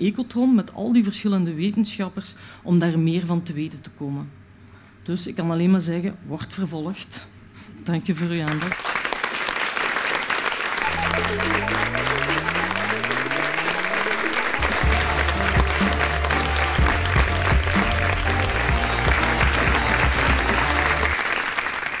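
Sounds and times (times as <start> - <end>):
studio audience applauding: 8.2 - 22.0
rising tone sweep: 10.8 - 15.6
low bass notes: 10.8 - 21.1.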